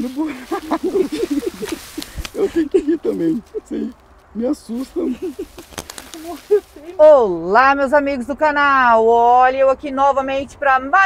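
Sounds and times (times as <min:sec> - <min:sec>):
person talking: 0:00.0 - 0:08.1.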